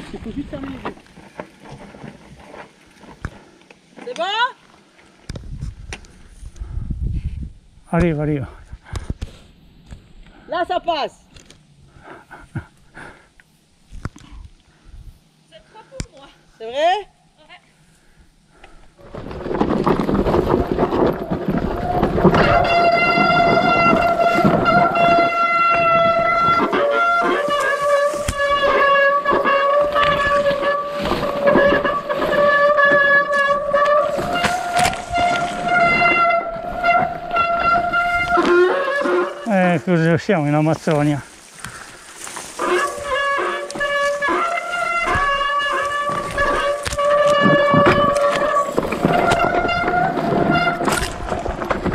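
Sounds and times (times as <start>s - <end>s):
tyres rushing through brush: 19.0s - 51.9s
bike brakes squealing: 20.3s - 39.8s, 42.4s - 51.2s.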